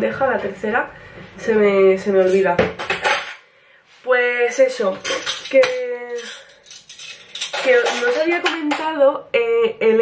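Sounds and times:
cutlery clinking: 0:02.3 - 0:03.4, 0:05.0 - 0:08.9.

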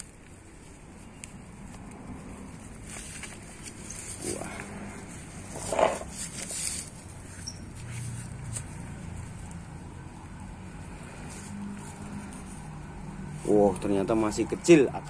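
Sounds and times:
fingers rustling through soil: 0:00.0 - 0:15.0.

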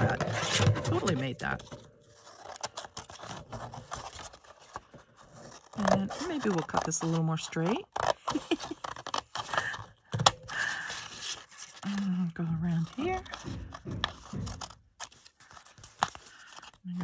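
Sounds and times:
paper rustling: 0:00.0 - 0:17.0
scissors snipping paper: 0:02.2 - 0:09.9.

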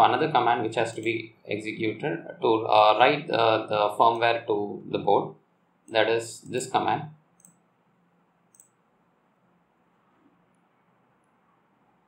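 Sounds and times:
faint computer mouse click: 0:07.4 - 0:07.6, 0:08.5 - 0:08.8.

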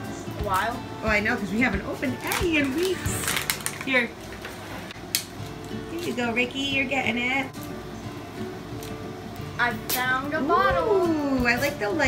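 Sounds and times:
sharp plastic crackle: 0:02.0 - 0:06.2
plastic wrapping crinkling: 0:02.1 - 0:06.2.

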